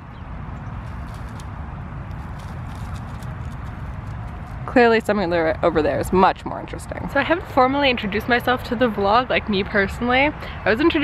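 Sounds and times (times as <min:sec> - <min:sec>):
footsteps crunching on mulch: 0:00.8 - 0:04.8.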